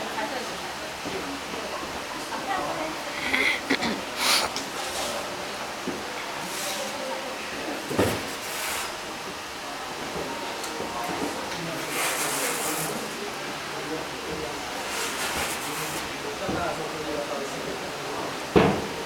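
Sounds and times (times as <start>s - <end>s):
indistinct voices: 2.2s - 5.4s.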